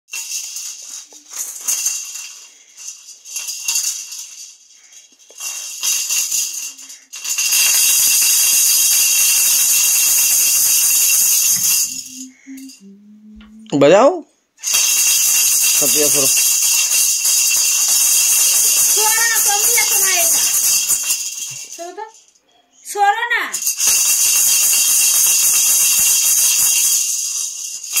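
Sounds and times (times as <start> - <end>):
toy maracas rattling: 0.1 - 12.9, 14.6 - 22.5, 23.5 - 28.0.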